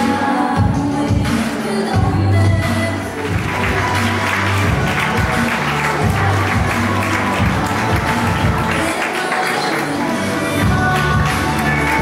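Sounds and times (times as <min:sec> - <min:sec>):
music with held bass notes: 0:02.0 - 0:08.8, 0:10.4 - 0:12.0
audience applauding: 0:03.1 - 0:12.0.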